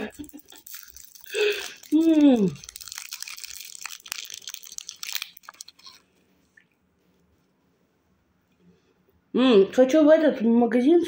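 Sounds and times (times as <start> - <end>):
foil candy wrapper crinkling: 0.0 - 6.2.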